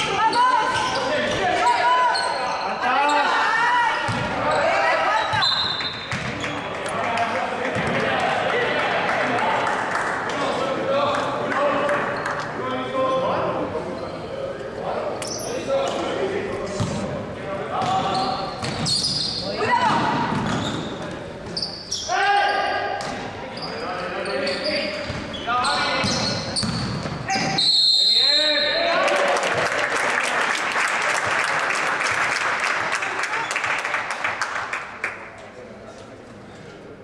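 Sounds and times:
crowd noise: 0.0s - 37.0s
basketball bouncing on floor: 4.1s - 4.3s, 6.1s - 6.4s, 19.8s - 20.6s, 26.0s - 27.6s
referee's whistle: 5.2s - 6.1s, 27.4s - 28.9s
crowd clapping: 6.4s - 12.5s, 29.0s - 35.4s.

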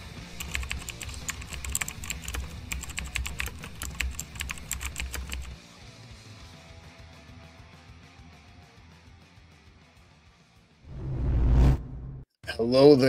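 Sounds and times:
keystroke clicks: 0.3s - 5.6s
low hum: 10.9s - 12.2s.

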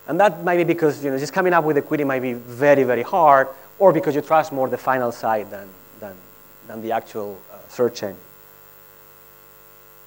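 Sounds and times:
electrical mains hum: 0.0s - 10.0s
man's voice: 0.1s - 8.3s.

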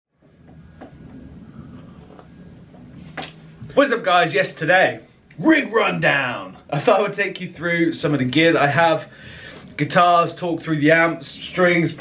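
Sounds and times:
low rumble: 0.2s - 5.4s.

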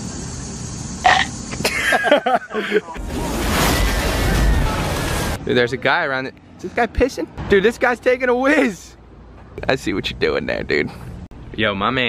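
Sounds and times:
rumbling crash with hiss: 3.0s - 5.4s.

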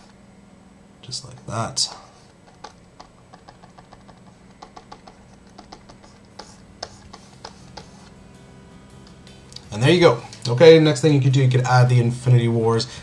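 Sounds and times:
low steady hum: 0.0s - 13.0s
keyboard and mouse clicking: 2.4s - 8.0s.

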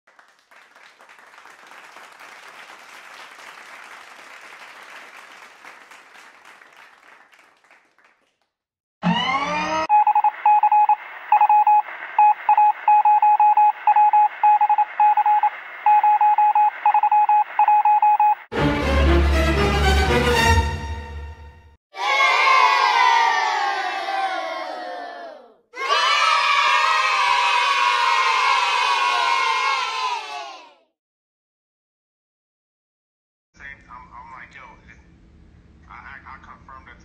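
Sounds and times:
rising electronic sweep: 9.0s - 10.9s
loud electronic beeps: 9.0s - 18.5s.

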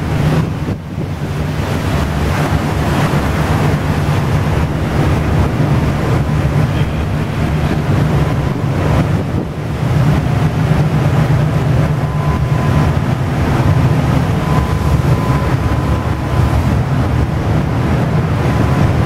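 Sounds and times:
ship engine rumble: 0.0s - 19.0s
water churning through ice: 0.0s - 19.0s
wind buffeting microphone: 0.0s - 19.0s.

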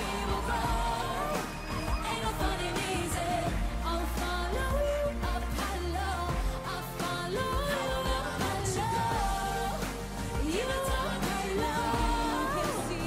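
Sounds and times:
bass and drum beat: 0.0s - 13.0s
female pop vocal: 0.0s - 13.0s.

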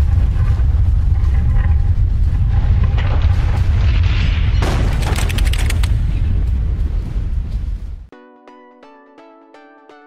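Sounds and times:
deep rumble: 0.0s - 8.1s.

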